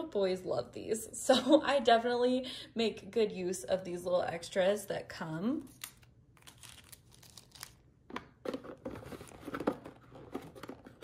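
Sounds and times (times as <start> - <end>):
plastic packaging crinkling: 5.8 - 7.8.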